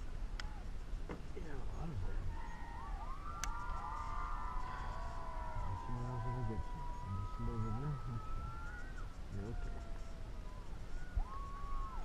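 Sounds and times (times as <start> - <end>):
siren wailing: 2.4 - 12.0.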